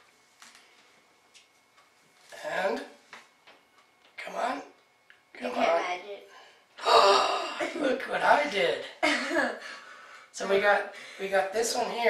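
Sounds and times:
person gasping loudly: 6.8 - 7.6.

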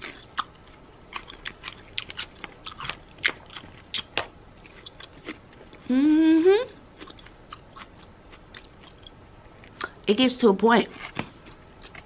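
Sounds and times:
chewing crunchy vegetables: 0.0 - 5.9, 6.9 - 10.0, 10.8 - 12.0.

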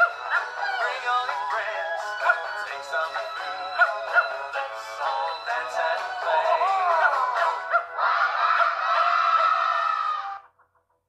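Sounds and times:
music with singing: 0.0 - 8.0.

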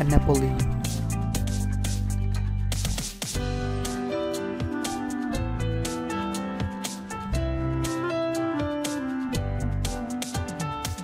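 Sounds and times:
guitar-led instrumental music: 0.0 - 11.0.

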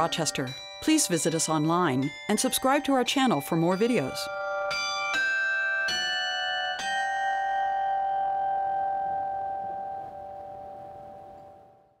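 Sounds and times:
struck bell-like notes: 0.0 - 12.0.

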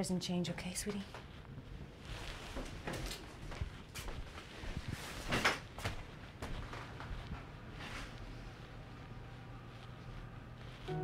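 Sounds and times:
soft knocks and rustles: 0.9 - 8.4.

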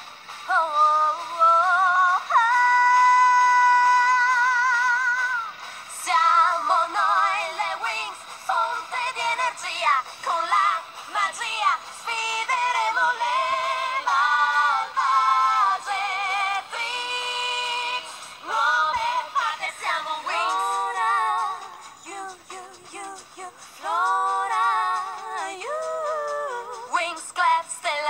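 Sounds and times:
a cappella harmony singing: 0.0 - 28.0.

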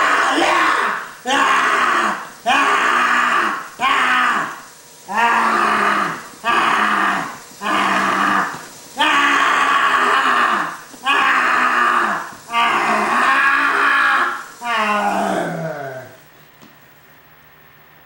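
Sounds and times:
person roaring and shrieking: 0.0 - 16.2.

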